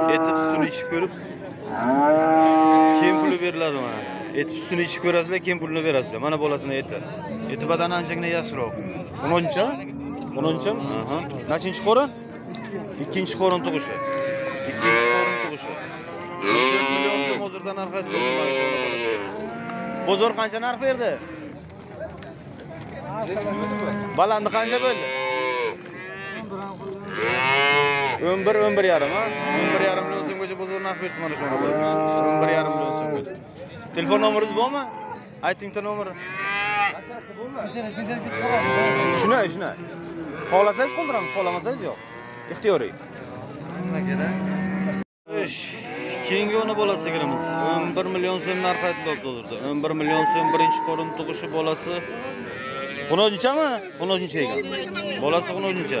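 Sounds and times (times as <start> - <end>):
cow mooing: 0.0 - 1.0, 1.7 - 5.1, 13.5 - 17.4, 18.0 - 20.3, 23.4 - 33.2, 38.1 - 42.6, 43.6 - 45.0, 45.8 - 49.2, 50.1 - 53.3.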